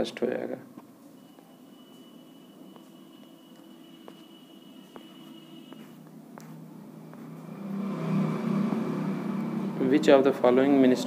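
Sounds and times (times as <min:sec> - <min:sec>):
motor vehicle rumble: 0:06.0 - 0:10.6.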